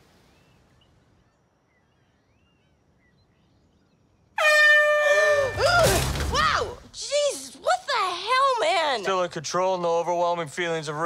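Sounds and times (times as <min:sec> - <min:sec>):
air horn blast: 0:04.4 - 0:05.7
woman yelling startled cries: 0:04.9 - 0:07.4.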